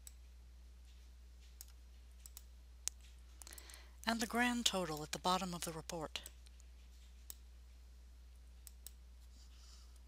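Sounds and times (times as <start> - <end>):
steady low hum: 0.0 - 10.0
computer mouse clicks: 1.6 - 3.8, 5.8 - 7.4, 8.6 - 9.0.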